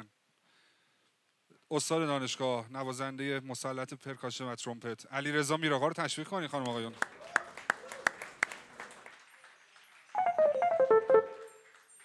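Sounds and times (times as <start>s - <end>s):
scattered applause: 6.8s - 12.0s.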